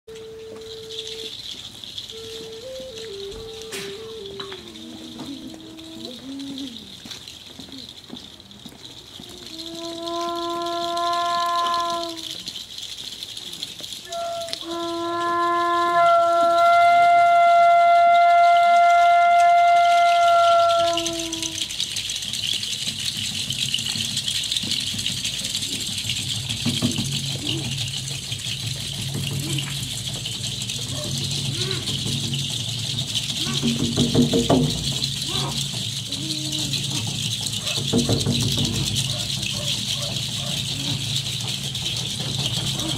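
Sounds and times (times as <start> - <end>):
wooden flute melody: 0.0 - 8.1, 9.2 - 12.6, 13.9 - 23.1, 26.6 - 42.9
outdoor background noise: 0.0 - 42.9
steady high hiss: 0.1 - 17.8.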